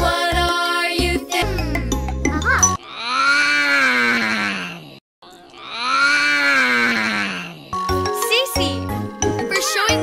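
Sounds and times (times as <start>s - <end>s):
cartoon yawn: 2.8s - 7.8s.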